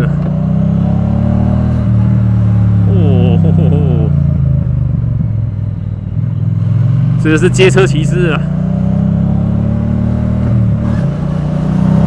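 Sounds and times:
motorcycle engine running: 0:01.9 - 0:08.8.

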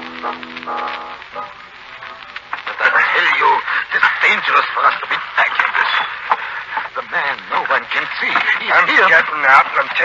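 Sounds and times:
voices speaking: 0:02.6 - 0:10.0.

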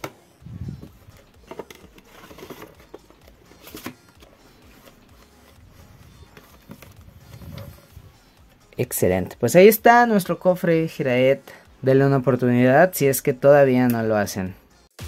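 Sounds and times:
quiet background music: 0:00.0 - 0:15.0.

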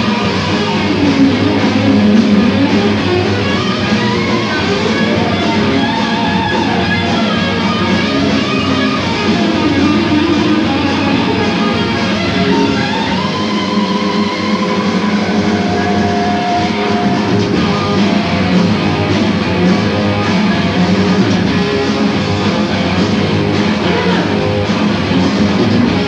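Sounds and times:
distorted electric guitar: 0:00.0 - 0:26.0
heavy metal band playing live: 0:00.0 - 0:26.0.

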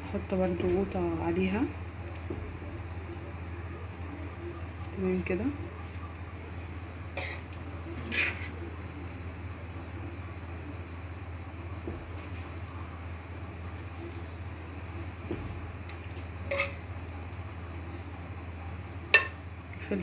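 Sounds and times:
steady low hum: 0:00.0 - 0:20.0
kitchen utensils clinking: 0:16.5 - 0:16.8, 0:19.2 - 0:19.4.

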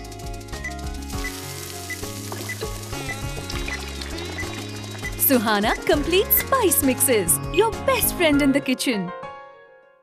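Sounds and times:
background music: 0:00.0 - 0:10.0
food sizzling in hot oil: 0:00.5 - 0:07.1.

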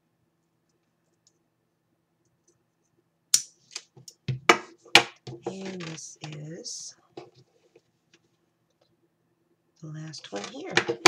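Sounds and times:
craft tools clicking and knocking: 0:10.2 - 0:11.0.

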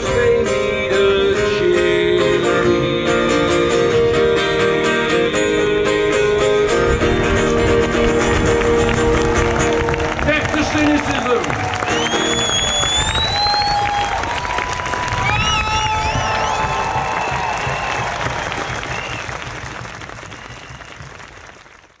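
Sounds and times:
crowd applauding and cheering: 0:08.0 - 0:22.0.

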